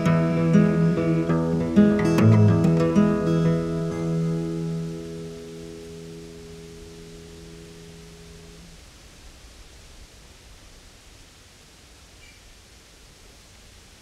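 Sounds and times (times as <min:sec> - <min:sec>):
acoustic guitar chord ringing: 0:00.0 - 0:08.8
faint steady hiss: 0:00.0 - 0:14.0.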